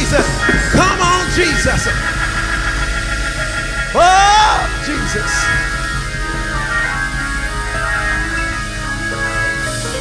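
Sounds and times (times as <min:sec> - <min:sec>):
low bass note: 0:00.0 - 0:10.0
sustained keyboard chord: 0:00.0 - 0:10.0.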